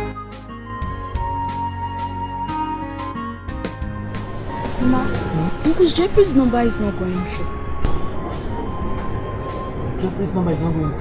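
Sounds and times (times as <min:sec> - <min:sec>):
low droning film score: 0:03.8 - 0:11.0.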